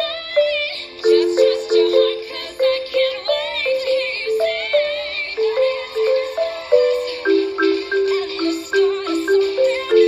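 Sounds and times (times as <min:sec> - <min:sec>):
high singing voice with vibrato: 0:00.0 - 0:10.0
marimba melody: 0:00.0 - 0:10.0.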